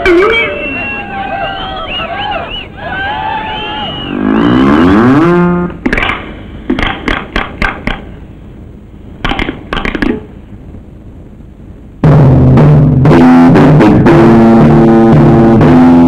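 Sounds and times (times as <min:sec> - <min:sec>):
sharp cracks: 0:05.8 - 0:08.2, 0:09.2 - 0:10.3.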